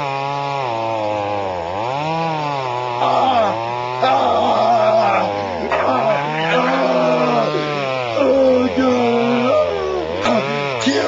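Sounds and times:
steady motor drone: 0:00.0 - 0:11.0
young man screaming and wailing: 0:03.0 - 0:11.0.

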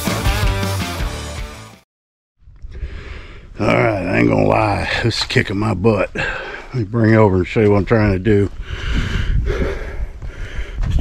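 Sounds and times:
man breathing hard: 0:02.7 - 0:03.6, 0:06.1 - 0:06.8, 0:08.6 - 0:11.0.

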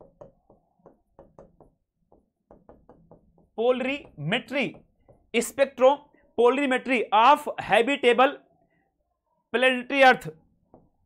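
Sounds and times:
chalk tapping on chalkboard: 0:00.0 - 0:05.4.

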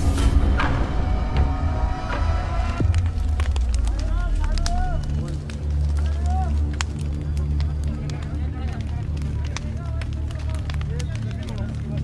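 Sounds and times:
indistinct voices: 0:00.6 - 0:12.0
sharp clicks and crackles: 0:02.8 - 0:12.0.

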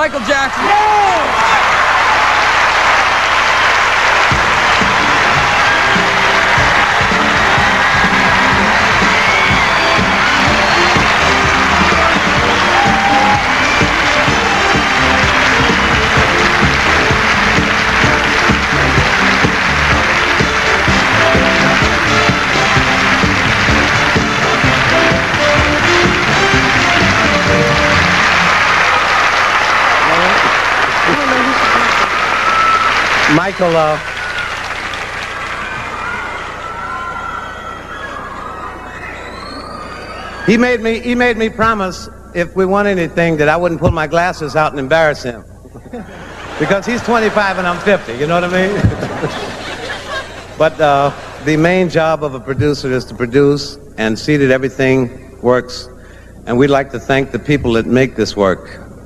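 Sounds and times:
audience applauding: 0:00.0 - 0:40.8, 0:45.8 - 0:51.7
band playing: 0:00.7 - 0:37.2, 0:42.4 - 0:53.4.

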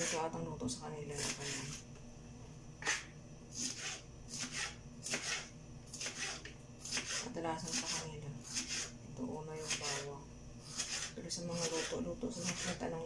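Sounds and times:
knife slicing on plastic board: 0:02.8 - 0:08.9.

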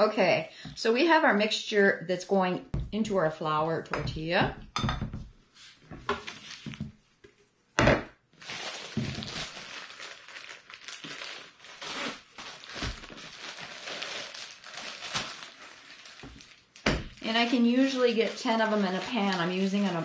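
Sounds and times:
plastic bag crinkling: 0:08.4 - 0:20.0.

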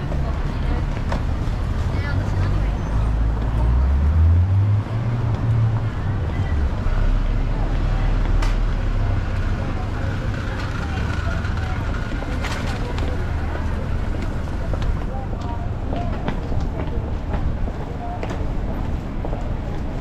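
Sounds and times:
chatter of passers-by: 0:00.0 - 0:20.0
low traffic rumble: 0:00.0 - 0:20.0.

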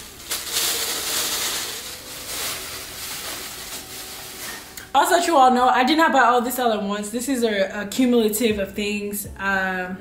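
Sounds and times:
plastic bag rustling: 0:00.0 - 0:04.8.

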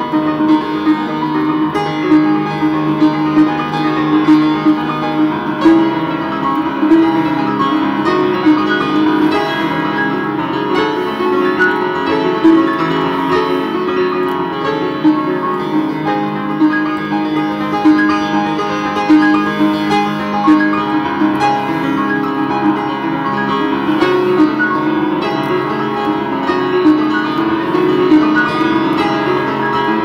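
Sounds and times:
upright piano playing a hymn: 0:00.0 - 0:30.0.

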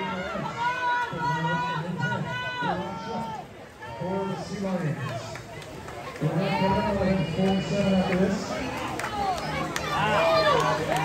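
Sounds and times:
spectators yelling encouragement: 0:00.0 - 0:05.4, 0:08.5 - 0:11.0.

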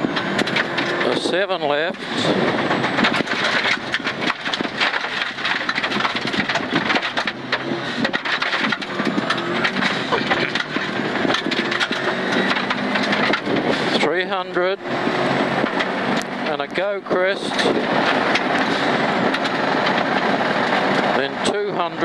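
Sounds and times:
car engine revving: 0:00.0 - 0:22.0
gravel striking car underbody: 0:00.0 - 0:22.0.

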